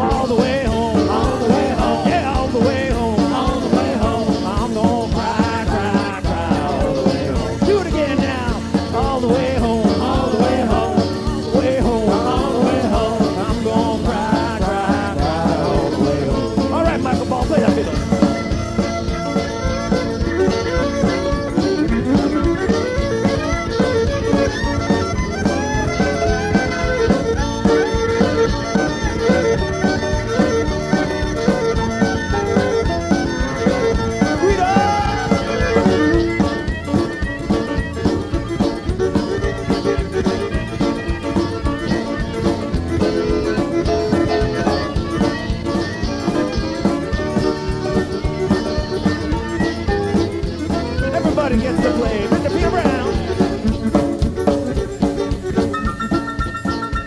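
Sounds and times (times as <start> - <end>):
accordion and fiddle melody: 0.0 - 57.0
band rhythm section: 0.0 - 57.0.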